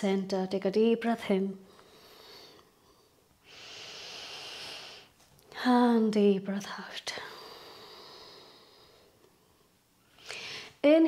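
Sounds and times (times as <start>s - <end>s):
woman breathing deeply: 1.6s - 5.2s, 7.2s - 10.8s.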